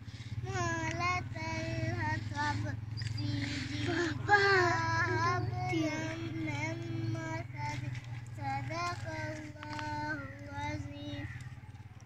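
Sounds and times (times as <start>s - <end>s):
steady low hum: 0.0s - 12.0s
girl chanting: 0.4s - 11.4s.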